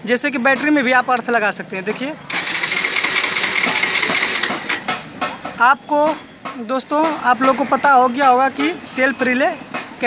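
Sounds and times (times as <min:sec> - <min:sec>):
starter motor cranking engine: 0:02.3 - 0:04.9.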